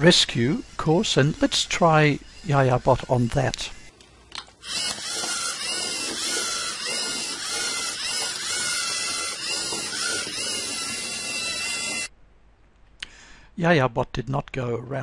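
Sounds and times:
robot servo motors whirring: 0:00.0 - 0:03.9, 0:04.6 - 0:12.1.

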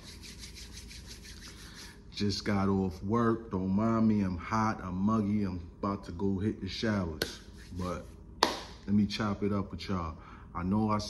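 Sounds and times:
hands rubbing together: 0:00.0 - 0:02.0, 0:07.2 - 0:08.6.

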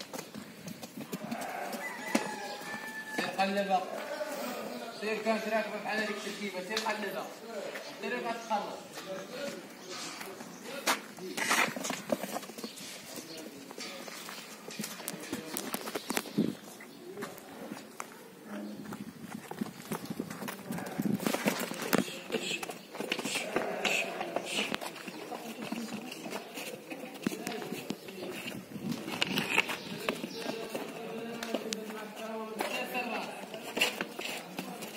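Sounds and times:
hooves on packed earth: 0:00.0 - 0:34.9.

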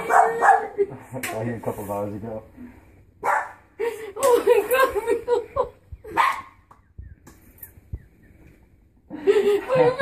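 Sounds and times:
dog barking: 0:00.0 - 0:00.8, 0:03.2 - 0:03.6, 0:06.1 - 0:06.6.

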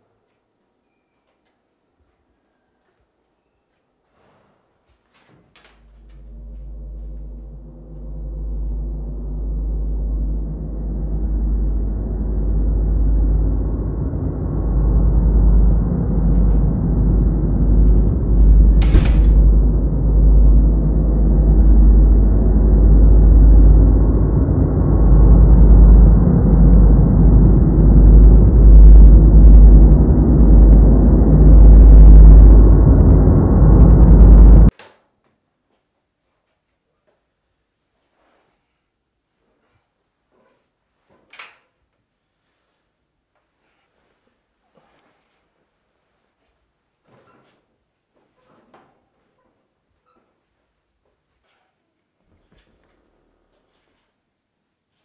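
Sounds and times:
low rumbling horror drone: 0:05.8 - 0:34.7.

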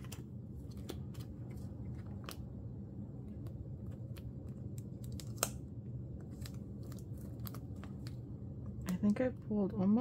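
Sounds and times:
plastic pages crinkling and clicking: 0:00.0 - 0:02.5, 0:03.4 - 0:05.6, 0:06.2 - 0:09.1
low steady hum: 0:00.0 - 0:10.0.

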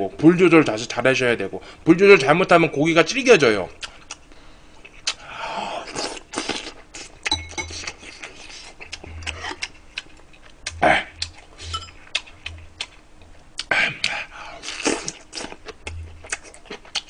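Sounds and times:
wet chewing: 0:05.9 - 0:17.0
utensils clinking on ceramic bowls: 0:07.3 - 0:07.9, 0:11.7 - 0:12.0.

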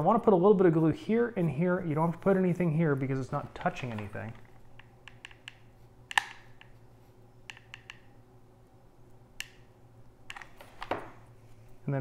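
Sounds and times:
glue gun clicks and taps: 0:04.8 - 0:06.7, 0:07.5 - 0:08.1.

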